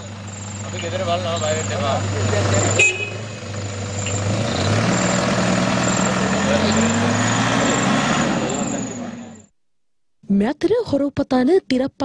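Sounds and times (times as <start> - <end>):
vehicle engine running: 0.0 - 9.5
road noise: 0.0 - 9.6.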